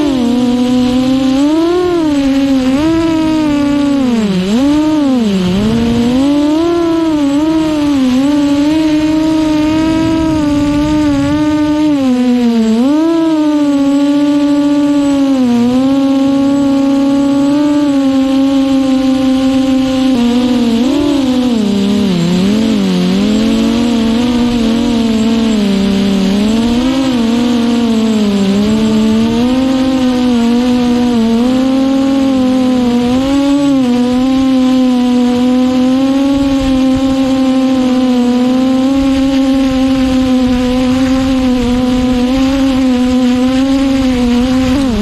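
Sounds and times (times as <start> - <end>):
quadcopter motors whining: 0.0 - 45.0.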